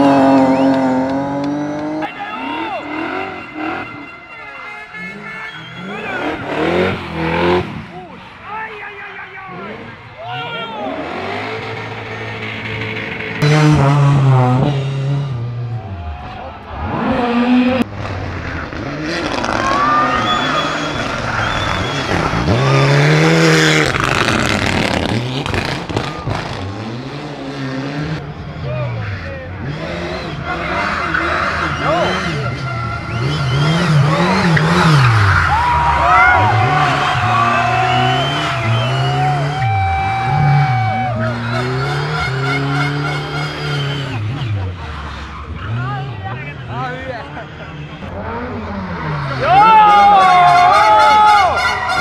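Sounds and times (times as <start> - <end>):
rally car engines revving: 0.0 - 8.5, 9.3 - 52.0.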